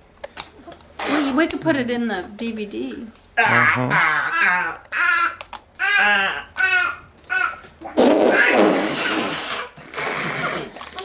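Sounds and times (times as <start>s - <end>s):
man blowing raspberries: 7.8s - 10.8s.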